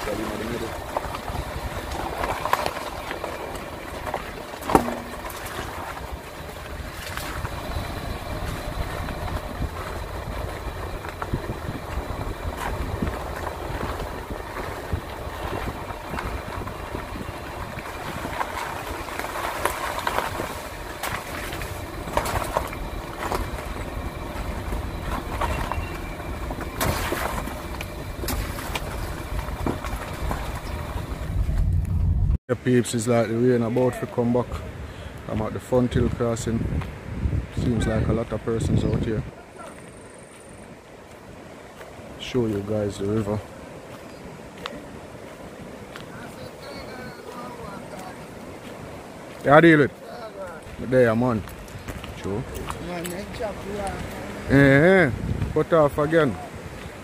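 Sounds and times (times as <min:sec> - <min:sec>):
road and engine rumble: 0:00.0 - 0:57.0.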